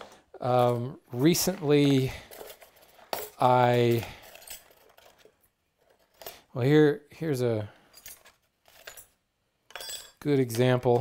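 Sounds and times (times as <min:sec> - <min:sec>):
steel pieces clinking: 0:01.5 - 0:06.5, 0:07.8 - 0:11.0.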